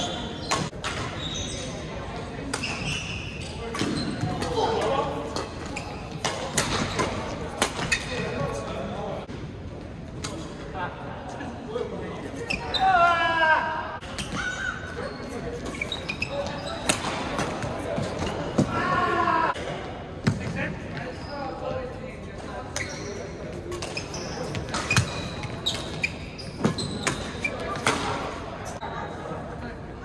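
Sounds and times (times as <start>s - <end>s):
shoe squeaking on gym floor: 0.0s - 4.7s, 5.4s - 7.2s, 12.4s - 13.0s, 14.0s - 18.6s, 22.6s - 29.4s.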